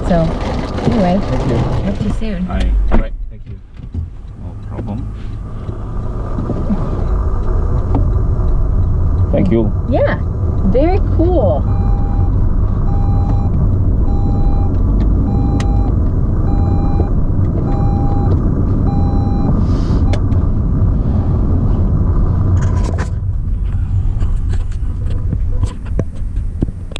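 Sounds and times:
road and engine rumble: 0.0 - 26.9
short electronic beeps: 11.6 - 20.2.

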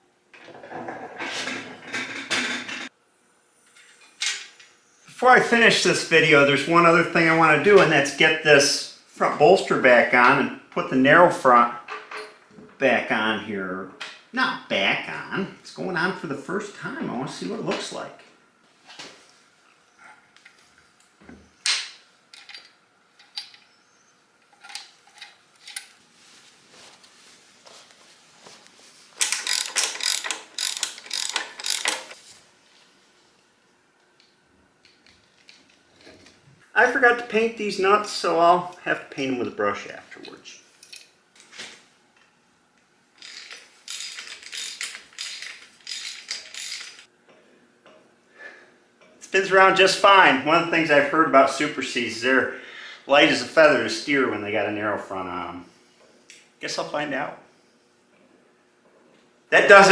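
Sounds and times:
socket ratchet clicking: 29.2 - 32.2.

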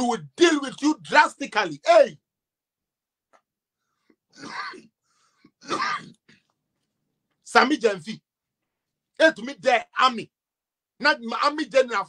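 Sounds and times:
man clearing his throat: 4.3 - 4.9, 5.6 - 6.5.

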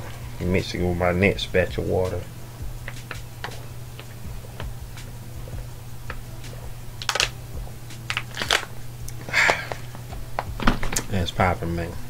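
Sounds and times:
steady low hum: 0.0 - 12.0
plastic bottle crinkling: 7.0 - 7.4, 8.1 - 8.7.

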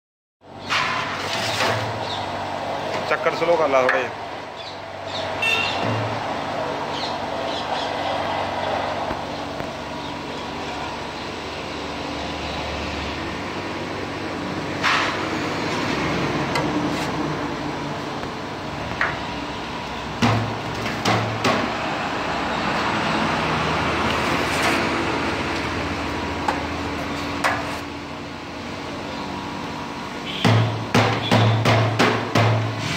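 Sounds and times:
scrapers scraping metal pan: 0.7 - 2.0.

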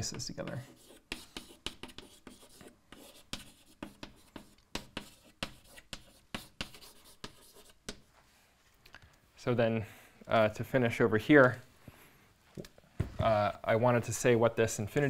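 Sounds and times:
chalk writing on a blackboard: 0.2 - 8.2.

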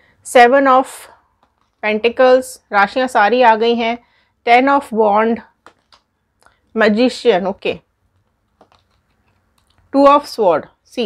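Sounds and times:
woman speaking: 0.3 - 1.2, 1.8 - 5.5, 6.7 - 7.9, 9.9 - 11.0
cards clicking and tapping: 5.6 - 6.1, 8.2 - 9.9.

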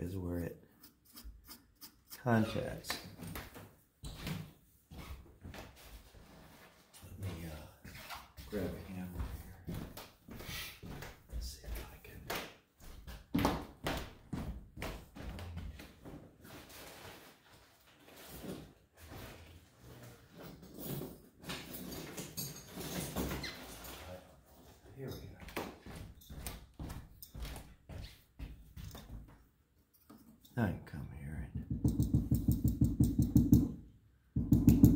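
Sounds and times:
hand tools knocking and clattering: 31.6 - 33.8, 34.4 - 34.9.

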